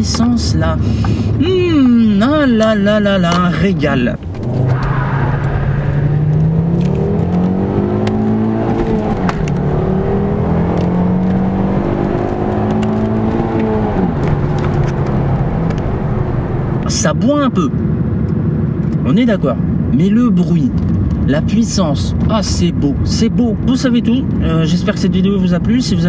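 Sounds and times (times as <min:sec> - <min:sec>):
car engine accelerating: 0:03.8 - 0:17.1.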